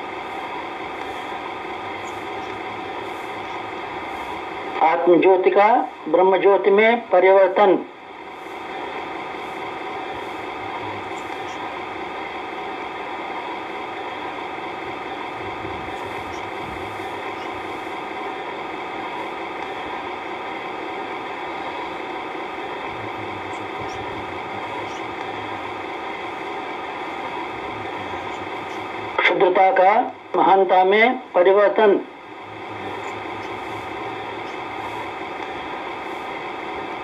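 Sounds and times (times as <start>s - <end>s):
steady motor-like hum: 0.0s - 37.0s
man speaking: 10.5s - 11.5s, 22.8s - 25.9s, 27.4s - 35.0s.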